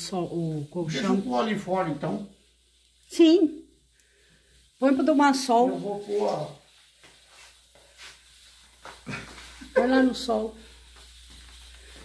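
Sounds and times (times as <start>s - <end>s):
fabric bedspread rustling: 4.8s - 12.0s.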